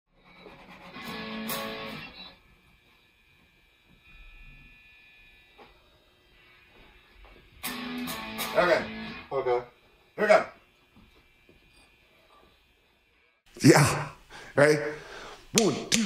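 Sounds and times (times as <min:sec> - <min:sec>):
guitar chord strummed: 0:07.6 - 0:09.3.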